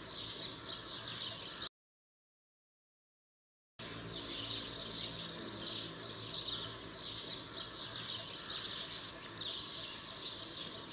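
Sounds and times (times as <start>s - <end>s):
many small birds chirping: 0.0s - 1.7s, 3.8s - 10.9s.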